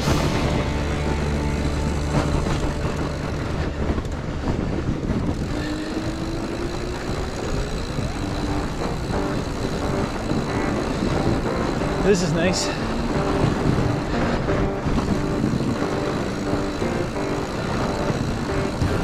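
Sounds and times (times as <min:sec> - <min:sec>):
bike tyres rolling on snow: 0:00.0 - 0:19.0
wind on microphone: 0:00.0 - 0:19.0.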